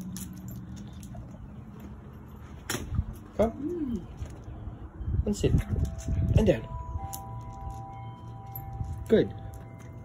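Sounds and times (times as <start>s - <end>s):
light clinks: 0.0s - 3.3s.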